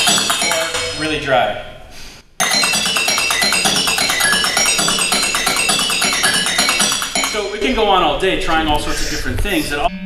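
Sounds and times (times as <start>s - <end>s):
percussion music with fast beat: 0.0s - 1.2s, 2.4s - 8.2s.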